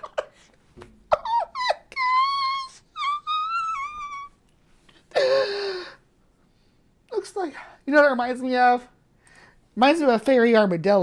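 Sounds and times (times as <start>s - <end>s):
woman moaning: 1.1s - 4.4s, 5.1s - 6.0s
woman squealing: 1.1s - 4.4s.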